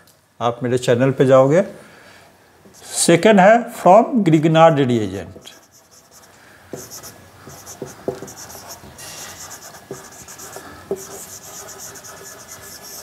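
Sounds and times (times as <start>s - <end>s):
marker squeaking on whiteboard: 5.4s - 13.0s.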